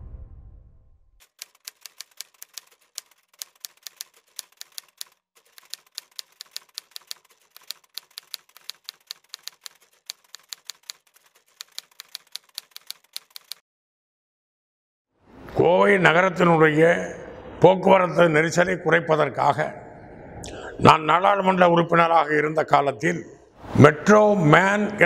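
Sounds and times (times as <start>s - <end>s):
typewriter key clicks: 1.2s - 13.6s.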